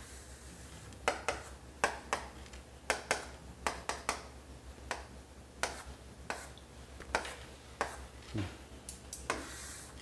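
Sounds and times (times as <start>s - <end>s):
chalk tapping on chalkboard: 1.0s - 4.3s, 4.9s - 8.0s, 9.2s - 9.9s.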